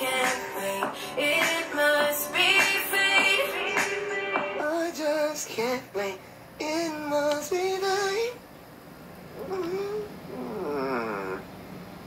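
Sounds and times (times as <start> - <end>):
wavering vocal sound: 4.5 - 8.4, 9.4 - 11.4.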